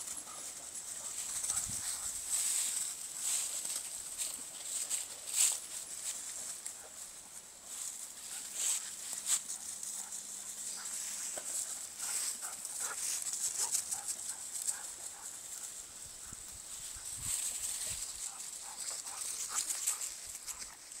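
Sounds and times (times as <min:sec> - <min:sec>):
footsteps running through dry leaves: 0:00.0 - 0:06.6, 0:07.7 - 0:21.0.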